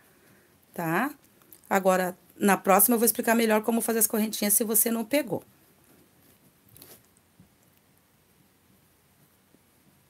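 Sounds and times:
faint rustle: 0:05.6 - 0:10.0.

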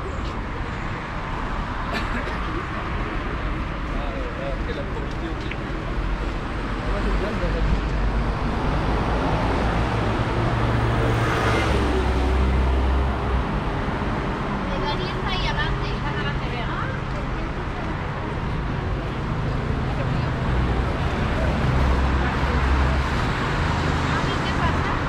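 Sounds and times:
passersby talking: 0:00.0 - 0:25.0
street traffic: 0:00.0 - 0:25.0
vehicle engine rumble: 0:00.0 - 0:25.0.

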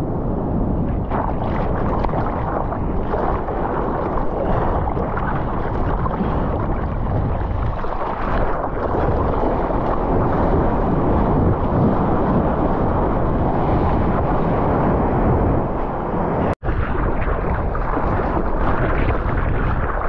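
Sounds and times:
wind buffeting microphone: 0:00.0 - 0:20.0
ocean water rushing and splashing: 0:00.8 - 0:20.0.

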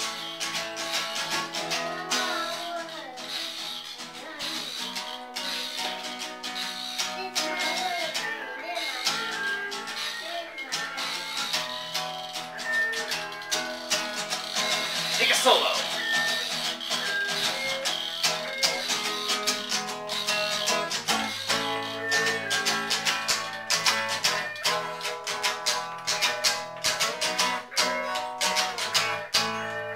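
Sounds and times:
acoustic guitar strumming: 0:00.0 - 0:29.9.

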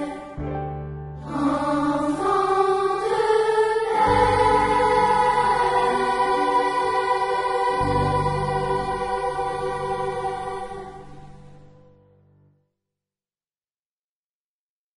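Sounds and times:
children's choir singing: 0:00.0 - 0:00.4, 0:01.2 - 0:11.9.

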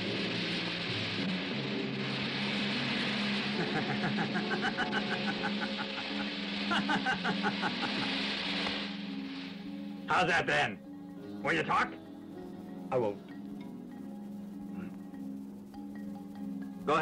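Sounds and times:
steady hiss: 0:00.0 - 0:17.0
low film score notes: 0:00.1 - 0:17.0
man laughing: 0:03.6 - 0:08.2.

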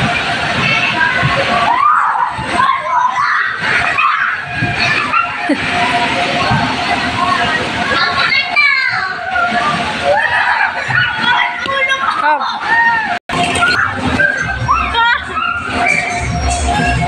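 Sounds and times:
children's voices babbling: 0:00.5 - 0:16.2.

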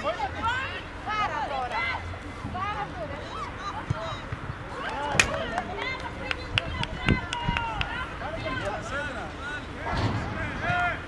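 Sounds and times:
open-air ambience: 0:00.0 - 0:11.0
players and coaches shouting: 0:07.1 - 0:11.0.

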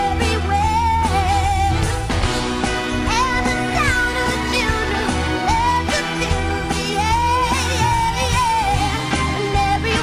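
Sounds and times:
woman singing: 0:00.0 - 0:02.1, 0:02.9 - 0:10.0
pop band backing: 0:00.0 - 0:10.0.

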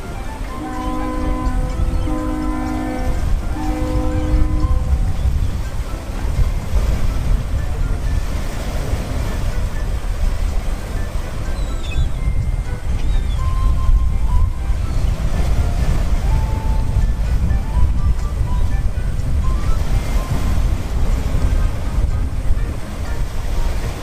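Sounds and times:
low rumble of ship engines: 0:00.0 - 0:24.0
ship horn blasts: 0:00.0 - 0:24.0.

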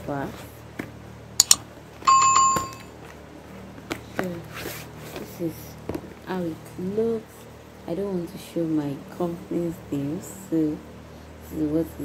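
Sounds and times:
light click: 0:01.4 - 0:01.6
metallic bell ding: 0:01.4 - 0:02.9.

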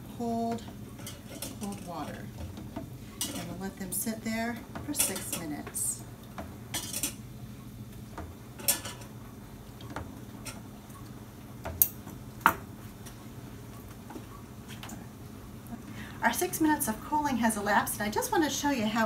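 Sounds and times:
metal tongs clinking on plastic: 0:04.9 - 0:05.5.

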